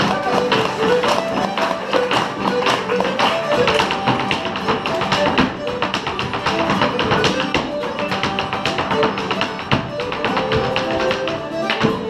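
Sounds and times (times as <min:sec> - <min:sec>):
shoes and broom tapping on wooden floor: 0:00.0 - 0:12.0
traditional folk tune played live: 0:00.0 - 0:12.0.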